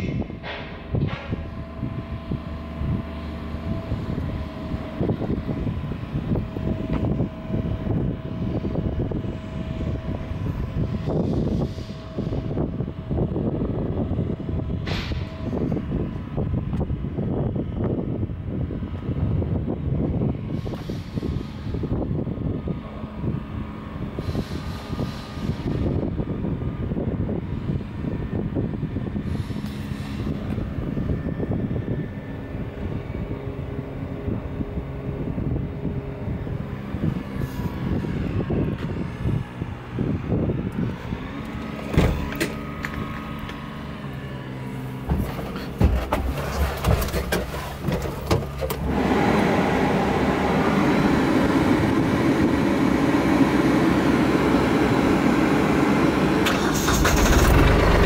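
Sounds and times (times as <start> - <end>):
diesel tractor engine idling: 0.0 - 58.0.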